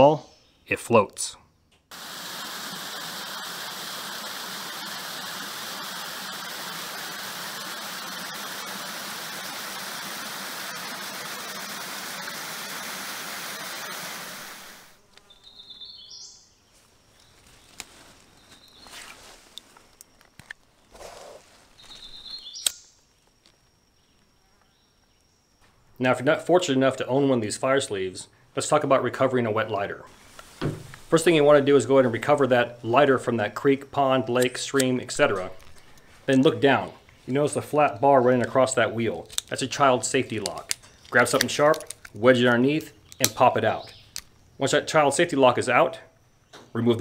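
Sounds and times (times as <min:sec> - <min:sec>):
waterfall rushing: 0:01.9 - 0:15.0
clicks in woods: 0:17.1 - 0:25.2, 0:38.4 - 0:44.4.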